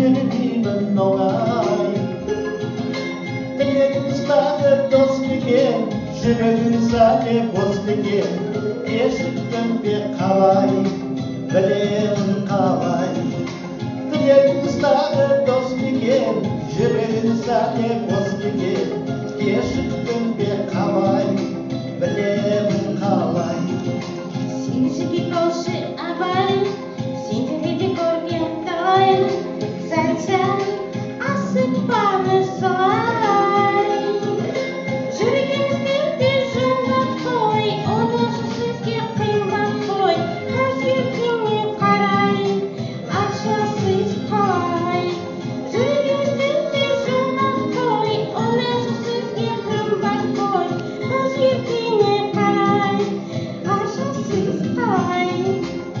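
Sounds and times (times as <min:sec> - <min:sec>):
instrumental accompaniment: 0:00.0 - 0:56.0
woman singing into microphone: 0:00.0 - 0:56.0.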